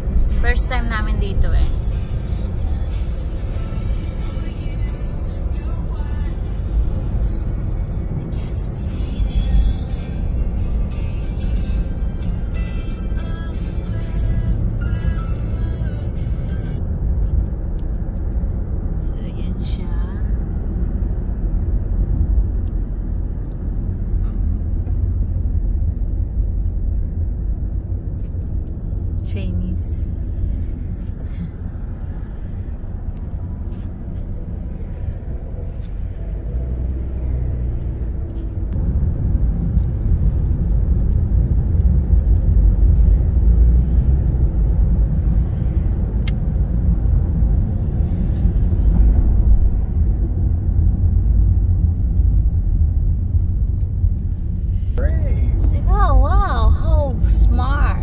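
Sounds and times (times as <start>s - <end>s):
car cabin road rumble: 0.0s - 58.0s.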